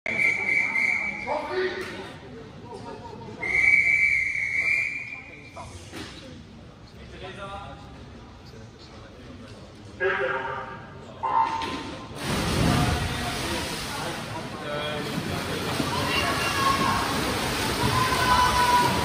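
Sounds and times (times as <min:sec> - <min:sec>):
referee whistle blasts: 0:00.1 - 0:01.3, 0:03.4 - 0:05.4.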